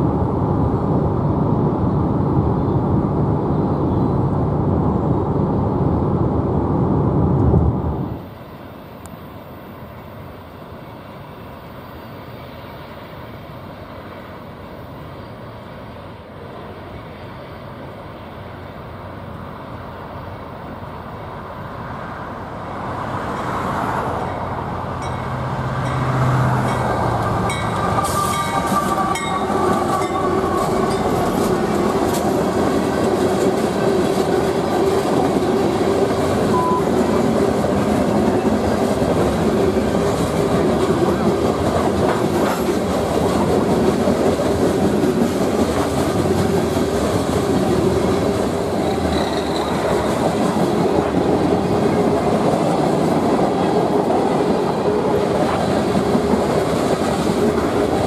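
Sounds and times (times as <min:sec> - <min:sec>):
train wheels rolling on rails: 0:00.0 - 0:58.0.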